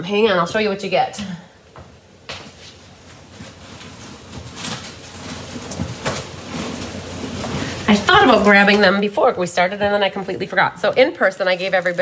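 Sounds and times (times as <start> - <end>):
handling noise: 1.7 - 12.0.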